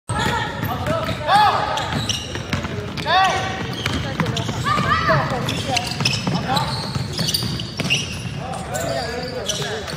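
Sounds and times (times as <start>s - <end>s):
basketball bouncing: 0.1s - 8.4s
shoe squeaks on court: 0.1s - 9.9s
voices echoing in hall: 0.1s - 9.9s.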